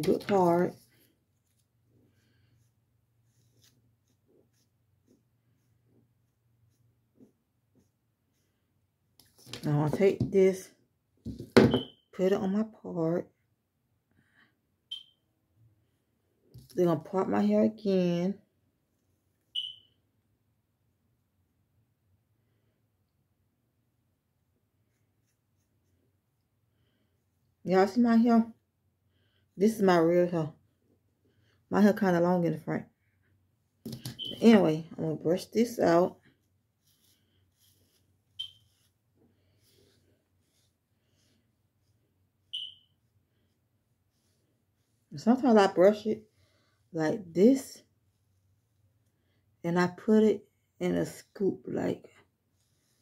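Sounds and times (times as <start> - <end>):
short high-pitched beep: 11.7 - 12.0, 14.9 - 15.2, 19.6 - 19.9, 34.2 - 34.4, 38.4 - 38.7, 42.5 - 42.9.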